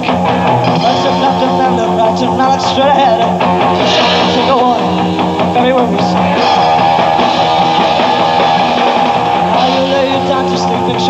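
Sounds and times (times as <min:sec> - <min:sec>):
bass guitar: 0:00.0 - 0:11.0
drums: 0:00.0 - 0:11.0
electric guitar bending notes: 0:00.0 - 0:11.0.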